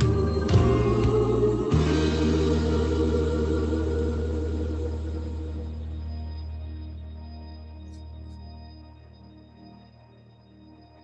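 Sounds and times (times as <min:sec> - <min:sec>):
gospel singing over held chord: 0:00.0 - 0:07.1.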